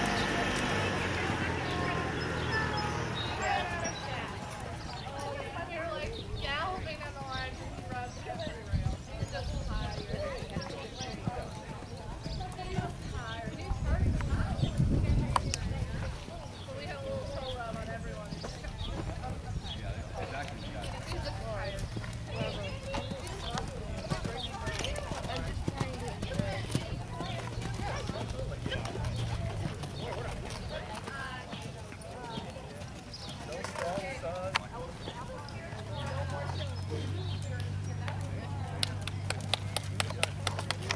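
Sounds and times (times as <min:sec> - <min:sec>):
horse hoofbeats on sand: 0:00.0 - 0:40.9
indistinct voices: 0:00.0 - 0:40.9.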